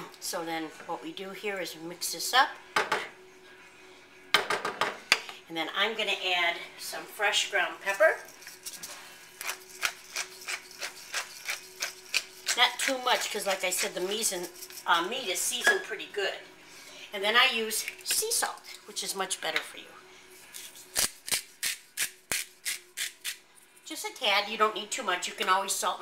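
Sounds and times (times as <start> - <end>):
pepper mill grinding: 7.9 - 15.7, 20.4 - 23.9.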